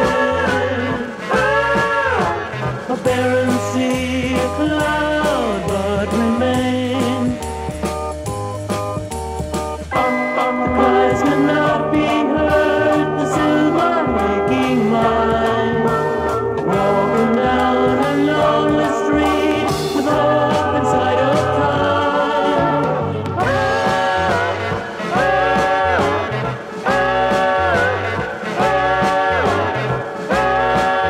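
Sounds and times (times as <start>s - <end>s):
rock band playing instrumental: 0.0s - 31.0s.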